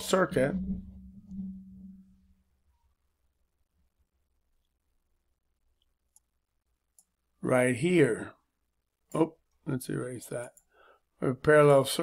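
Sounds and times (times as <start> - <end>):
low steady hum: 0.0 - 7.3.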